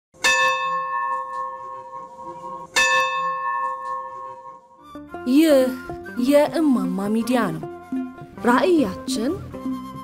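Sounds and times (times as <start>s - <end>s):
church bell ringing: 0.2s - 4.8s.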